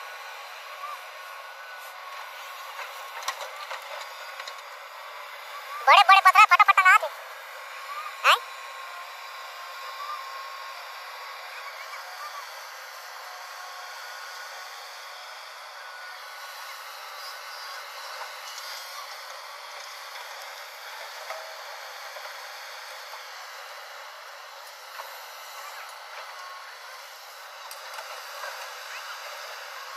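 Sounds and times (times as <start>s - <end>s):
excavator working: 0.0s - 29.9s.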